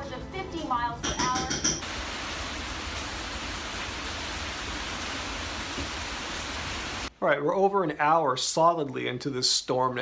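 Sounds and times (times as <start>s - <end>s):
heavy rain on roof: 1.8s - 7.1s.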